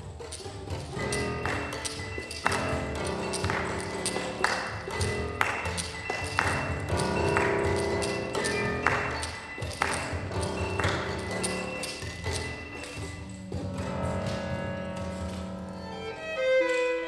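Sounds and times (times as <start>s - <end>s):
chamber music for strings piano clarinet: 9.8s - 17.0s.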